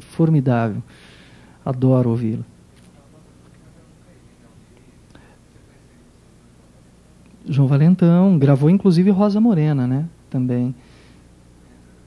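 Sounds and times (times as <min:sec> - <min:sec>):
low hum and hiss: 0:00.0 - 0:12.0.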